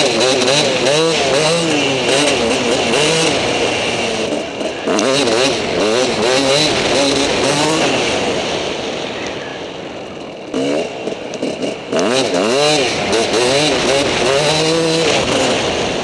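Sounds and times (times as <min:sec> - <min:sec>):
motocross engine revving: 0:00.0 - 0:16.0.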